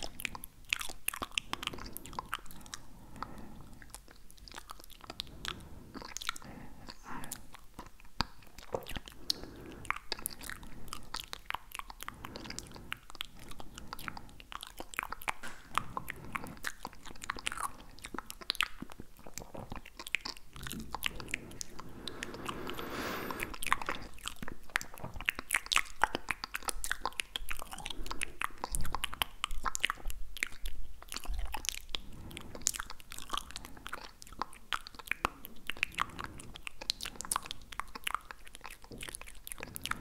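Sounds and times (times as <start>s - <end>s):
wet tongue and mouth sounds: 0.0s - 40.0s.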